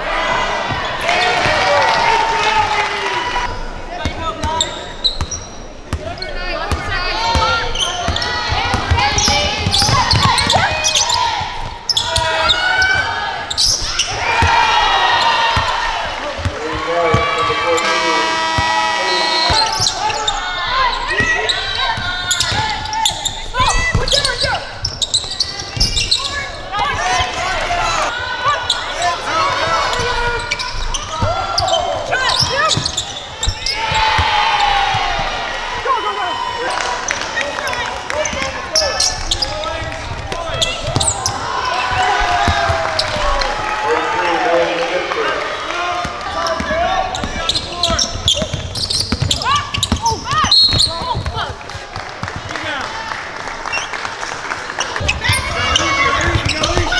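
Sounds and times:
players calling out: 0.0 - 56.9.

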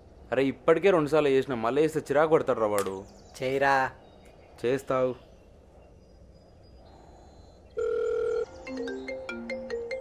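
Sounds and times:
electronic ringtone melody: 7.8 - 10.0
phone ringtone beep: 7.8 - 10.0.

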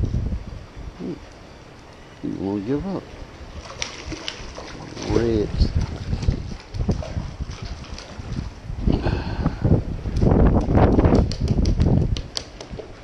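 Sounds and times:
wind buffeting microphone: 0.0 - 1.8, 2.4 - 13.0
water splashing: 3.0 - 8.9
fish flopping on wooden planks: 3.5 - 8.5, 10.1 - 13.0.

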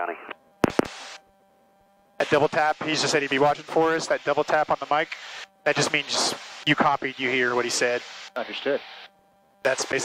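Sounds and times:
radio hiss burst: 0.0 - 1.2, 2.2 - 10.0.

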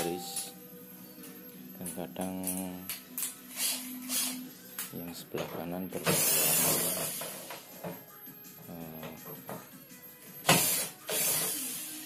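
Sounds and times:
background music: 0.0 - 12.0
cordless drill whirring: 3.6 - 4.4, 10.6 - 12.0.

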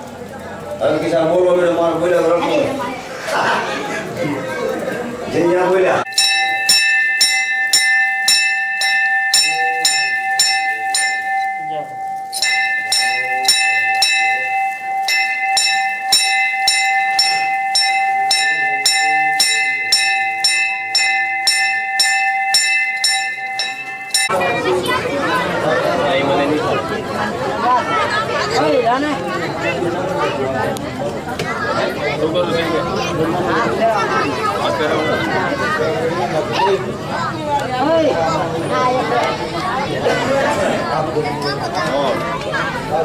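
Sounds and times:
brass bell ringing: 6.0 - 24.7.

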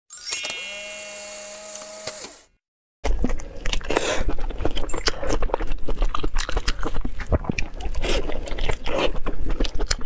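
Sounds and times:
bright shimmering chime: 0.1 - 1.6.

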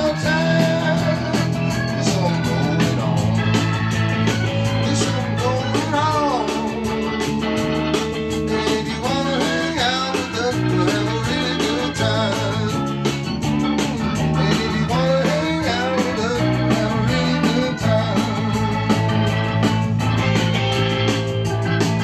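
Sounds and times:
electric bass: 0.0 - 22.0
electric guitar lead with bent notes: 0.0 - 22.0
organ: 0.0 - 22.0.

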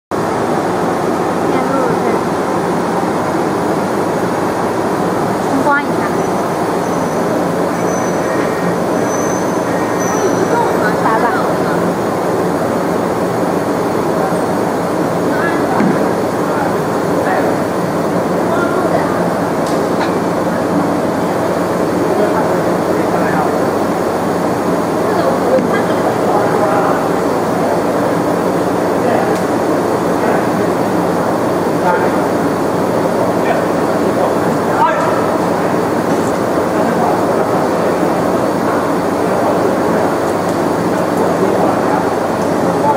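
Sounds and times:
laser marking machine running: 0.2 - 42.9
faint voices: 4.2 - 42.9.

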